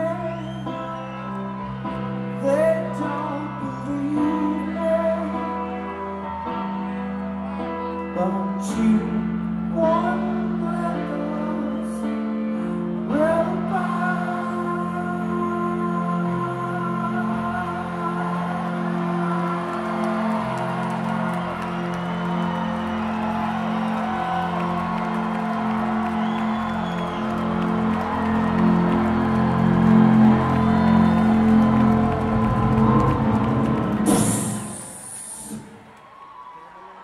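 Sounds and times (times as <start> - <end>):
crowd whooping: 17.8 - 37.0
loud hiss: 34.1 - 35.9.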